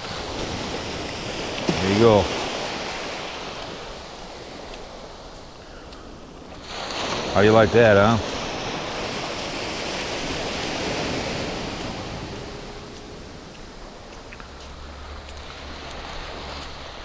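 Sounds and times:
small waves on sandy shore: 0.0 - 17.0
wind on microphone: 0.0 - 17.0.

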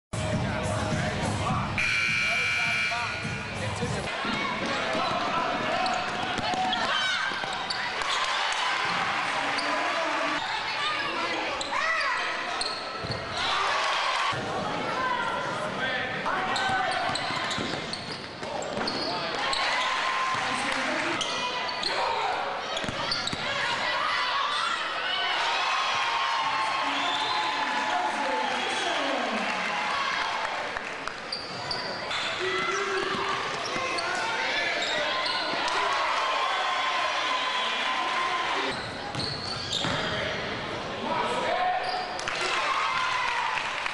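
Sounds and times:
players and spectators shouting: 1.8 - 17.6, 19.2 - 30.7, 31.6 - 38.8
sneakers squeaking on floor: 1.9 - 8.3, 9.4 - 13.4, 16.4 - 20.0, 21.1 - 22.1, 22.7 - 23.7, 31.3 - 35.8, 38.6 - 40.2, 41.8 - 42.2.

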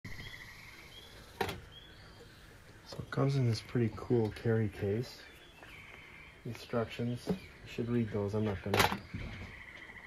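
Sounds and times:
bird chirping: 0.1 - 10.0
faint outdoor ambience: 0.1 - 10.0.

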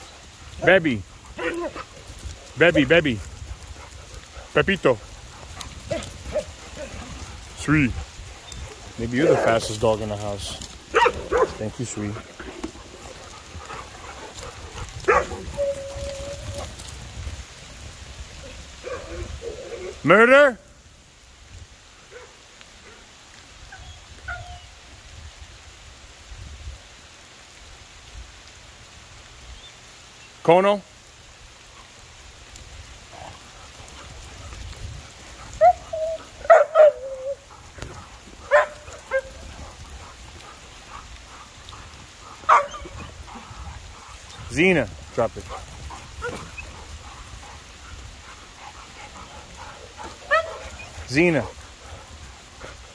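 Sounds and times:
dogs yipping and barking: 3.5 - 9.8, 10.6 - 11.6, 12.3 - 16.9, 18.4 - 20.0, 33.1 - 44.4, 45.4 - 52.9
dog barking: 10.9 - 11.6, 15.0 - 15.5, 22.1 - 23.0, 35.6 - 37.4, 38.5 - 39.4, 42.4 - 43.0, 50.0 - 50.9.

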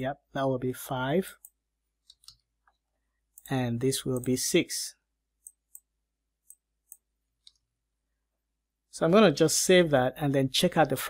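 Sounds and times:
computer keyboard and mouse clicks: 1.4 - 4.4.

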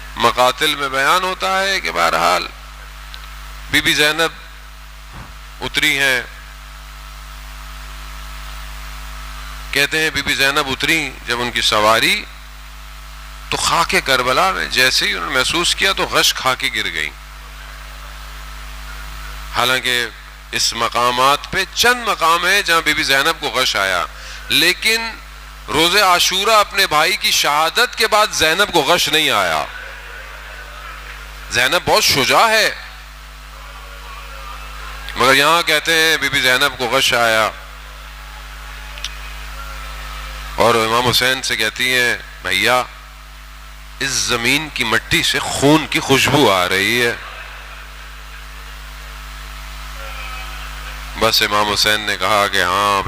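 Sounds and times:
electrical mains hum: 0.0 - 53.0
microphone hiss: 0.0 - 53.0.

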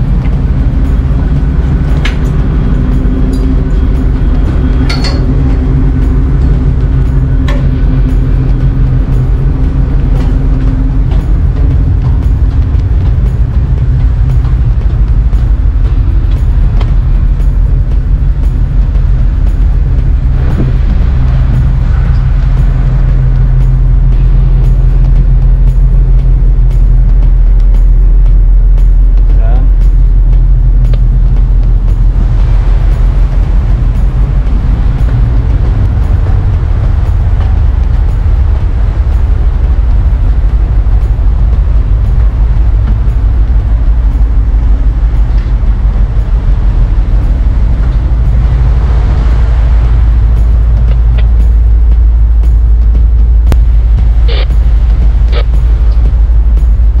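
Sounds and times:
ship engines droning: 0.0 - 57.0
wind rumbling on microphone: 0.0 - 57.0.

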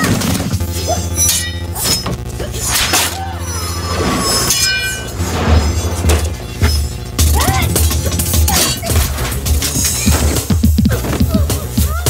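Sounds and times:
metal blades clashing: 0.0 - 10.5
heavy bass-driven film score: 0.0 - 12.0.

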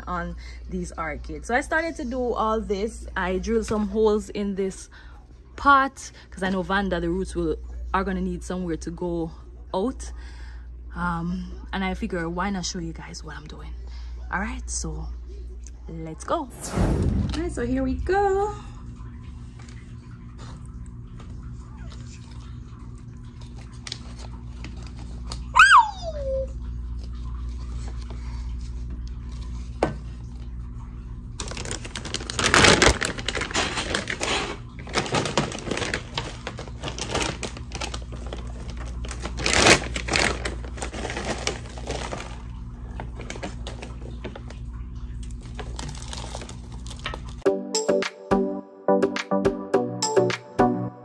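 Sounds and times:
low background hum: 0.0 - 47.4
bark chips rattling into pot: 31.4 - 42.5.

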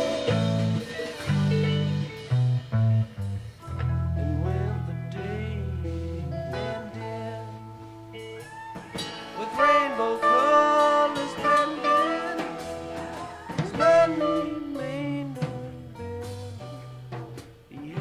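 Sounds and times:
bass line: 0.0 - 18.0
lead guitar with bent notes: 0.0 - 18.0.

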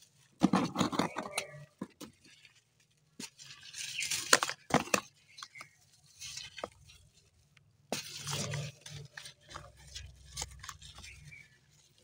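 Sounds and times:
dried soil ball cracking: 0.0 - 12.0
soil crumbling gritty crackles: 0.0 - 12.0.

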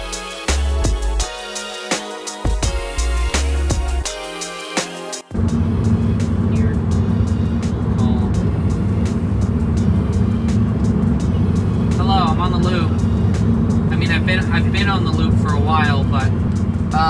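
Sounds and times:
road and tyre rumble in car: 5.3 - 17.0.

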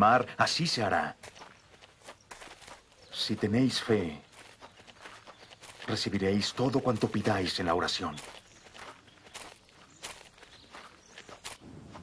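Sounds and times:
footsteps of people walking: 1.0 - 12.0.

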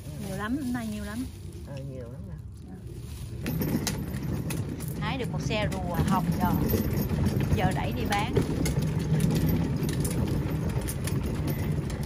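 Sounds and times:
wheelbarrow rolling on concrete: 0.0 - 12.0
wheelbarrow clacks and rattles: 3.2 - 12.0.

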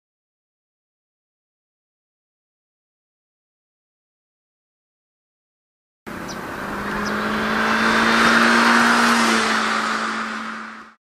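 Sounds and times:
car driving past: 6.1 - 11.0.

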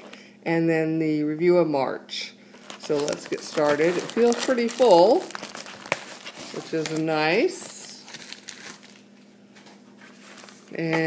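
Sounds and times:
plastic mailer crinkling: 2.6 - 9.1.

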